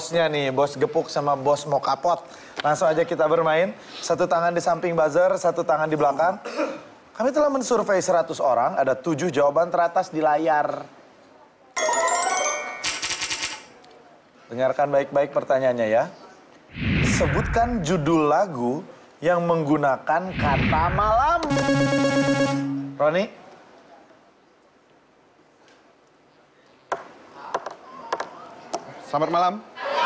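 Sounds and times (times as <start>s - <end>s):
bright ringing chime: 11.8s - 13.2s.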